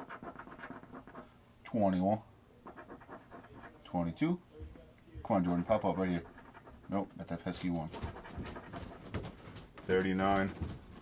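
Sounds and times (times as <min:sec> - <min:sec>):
coin scratching ticket: 0:00.0 - 0:01.2.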